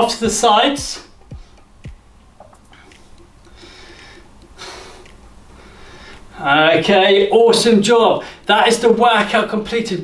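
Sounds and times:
man breathing out: 0:03.5 - 0:06.3.

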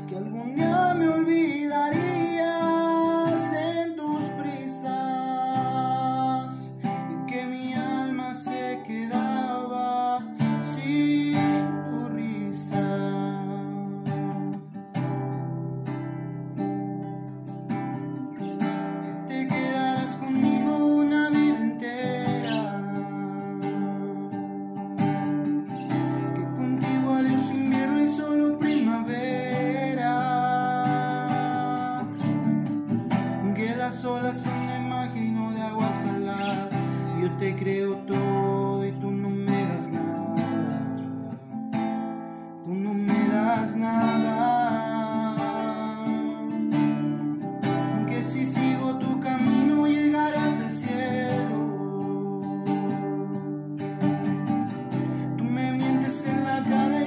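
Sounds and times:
man singing a slow ballad: 0:00.0 - 0:14.7, 0:18.5 - 0:24.9, 0:25.9 - 0:41.8, 0:42.5 - 0:53.7, 0:54.9 - 0:57.0
acoustic guitar strumming: 0:00.0 - 0:57.0.

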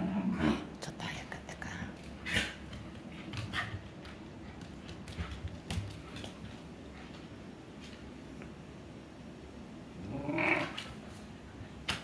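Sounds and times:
dog growling: 0:10.0 - 0:10.9.

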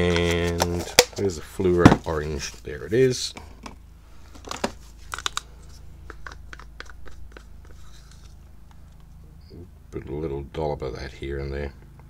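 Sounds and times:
steady low hum: 0:00.0 - 0:12.0
small clicks and crackles: 0:04.4 - 0:09.1.

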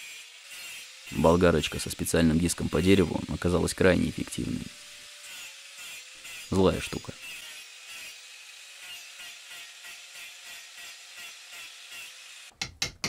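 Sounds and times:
angle grinder rasping wood: 0:00.0 - 0:12.6.

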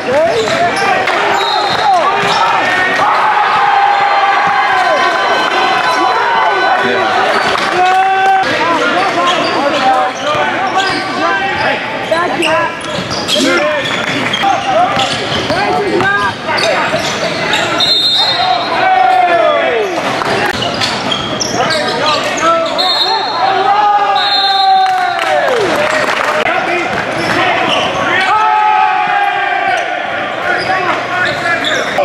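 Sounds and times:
sneakers squeaking: 0:00.0 - 0:04.6, 0:08.4 - 0:18.8, 0:19.4 - 0:24.6, 0:26.9 - 0:28.4, 0:29.6 - 0:32.0
players' voices in echoing hall: 0:00.0 - 0:32.0.

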